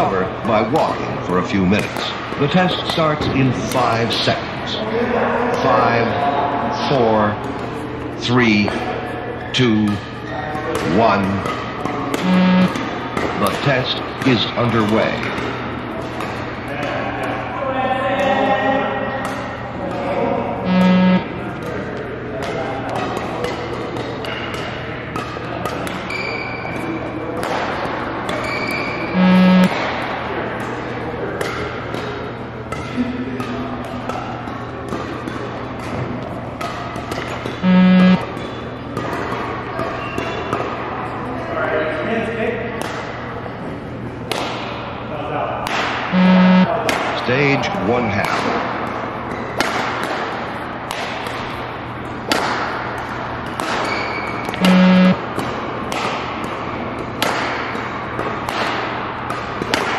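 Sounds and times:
short loud pacing beep: 12.2s - 12.8s, 20.6s - 21.2s, 29.1s - 29.7s, 37.6s - 38.2s, 46.1s - 46.7s, 54.6s - 55.2s.

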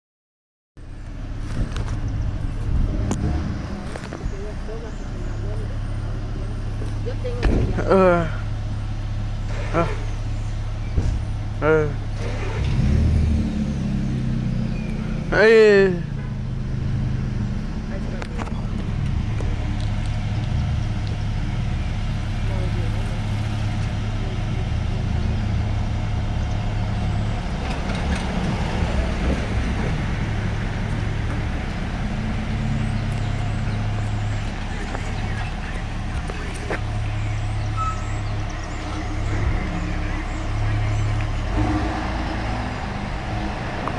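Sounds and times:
low vehicle rumble: 0.8s - 43.9s
van engine humming: 0.8s - 43.9s
faint unclear voices: 33.6s - 42.9s.

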